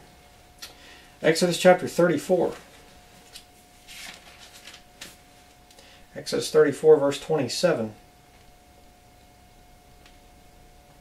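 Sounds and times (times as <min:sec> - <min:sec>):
faint steady hum: 0:00.0 - 0:11.0
thin pages being turned: 0:03.3 - 0:05.6.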